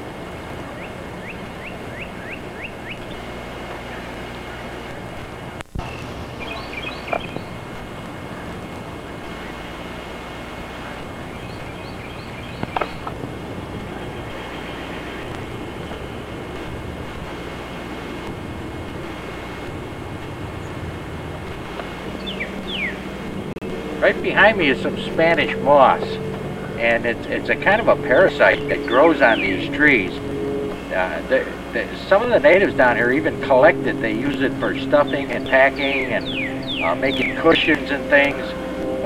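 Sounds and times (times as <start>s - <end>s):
outdoor background noise: 0.0s - 39.0s
high bird chirps: 5.8s - 7.6s, 22.1s - 23.0s, 35.8s - 37.4s
sliding bird calls: 21.6s - 23.2s.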